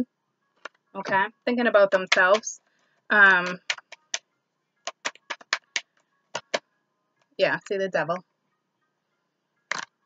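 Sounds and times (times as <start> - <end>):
cards shuffling and clicking: 3.4 - 4.2, 4.9 - 6.6.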